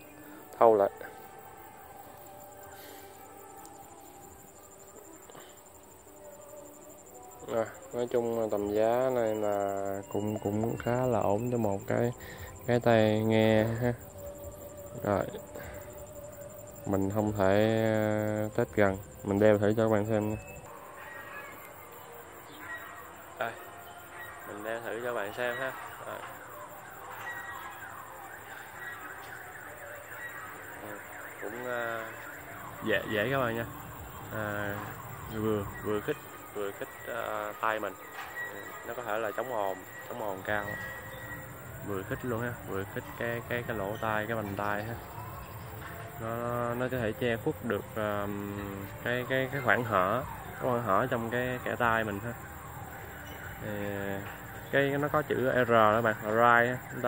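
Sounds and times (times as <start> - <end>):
birds chirping: 0.0 - 57.0.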